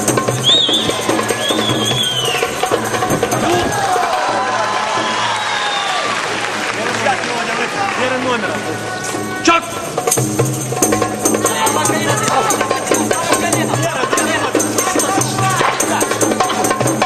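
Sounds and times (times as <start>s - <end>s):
crowd shouting: 0.4s - 6.5s, 11.5s - 12.8s.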